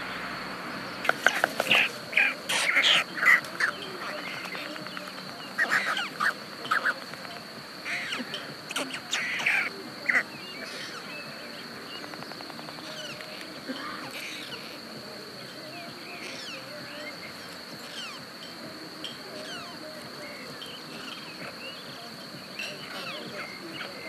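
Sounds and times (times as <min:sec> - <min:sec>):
stork bill clattering: 0:00.0 - 0:24.0
storks calling harshly: 0:00.0 - 0:24.0.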